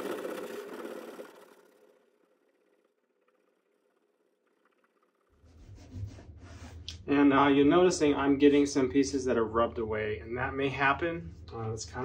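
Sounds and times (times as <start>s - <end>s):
low hum: 0.0s - 12.0s
damp cloth rubbing paper: 5.4s - 6.9s.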